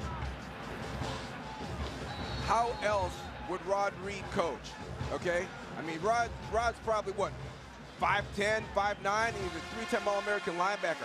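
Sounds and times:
music playing: 0:00.0 - 0:11.0
stadium crowd noise: 0:00.0 - 0:11.0.

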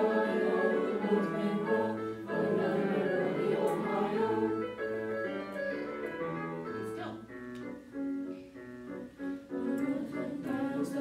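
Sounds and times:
choir singing: 0:00.0 - 0:05.8, 0:09.5 - 0:11.0
piano playing held chords: 0:00.0 - 0:11.0.

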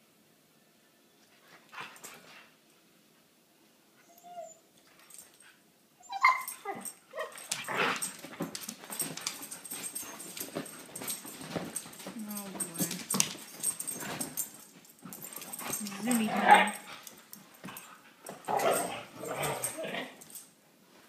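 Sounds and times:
dogs scuffling and scrabbling: 0:06.4 - 0:21.0
dogs growling: 0:15.3 - 0:16.9, 0:18.4 - 0:20.3.

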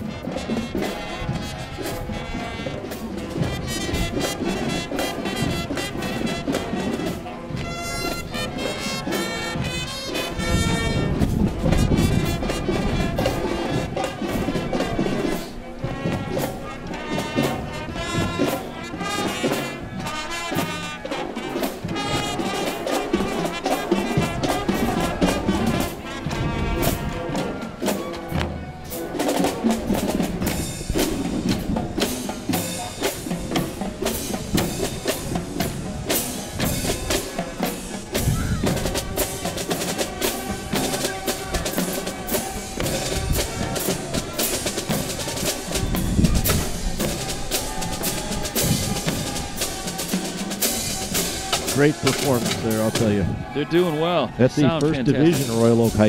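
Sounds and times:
brass and woodwinds: 0:00.0 - 0:56.0
drumline drums and cymbals: 0:00.0 - 0:56.0.

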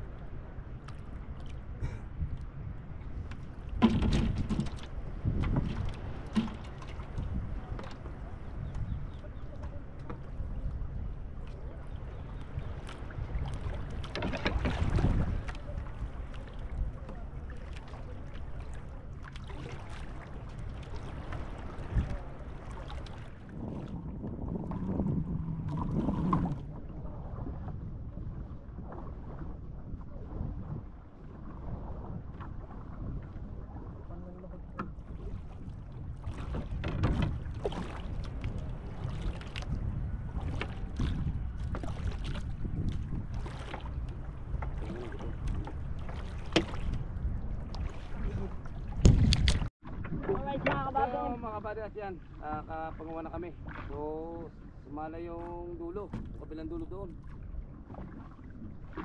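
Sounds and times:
water noise: 0:00.0 - 0:59.0
wind noise: 0:01.7 - 0:09.4, 0:12.4 - 0:16.0, 0:23.1 - 0:51.7
knocks and splashes: 0:03.2 - 0:08.3, 0:12.7 - 0:51.2, 0:52.2 - 0:54.0, 0:55.4 - 0:59.0.

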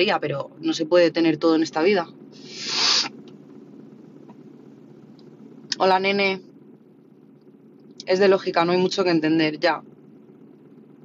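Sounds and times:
low steady hum: 0:00.0 - 0:11.0
breathy hiss of air: 0:02.4 - 0:03.1.

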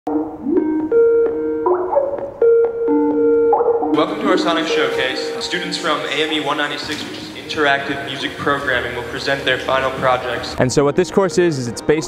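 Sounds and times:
electronic keyboard melody: 0:00.1 - 0:12.0.

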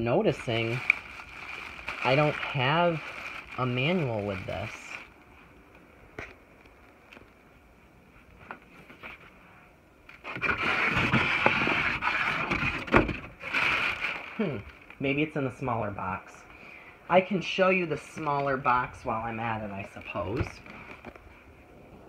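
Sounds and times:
cardboard box scraping and rustling: 0:10.2 - 0:14.3.

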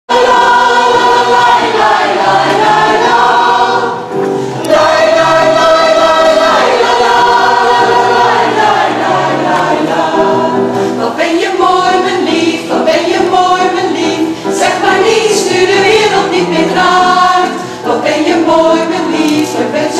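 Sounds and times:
mixed choir singing: 0:00.1 - 0:19.9.

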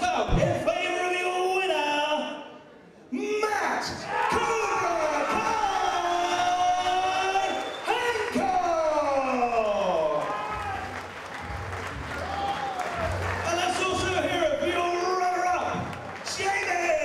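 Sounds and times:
crowd applause and cheering: 0:04.1 - 0:17.0.

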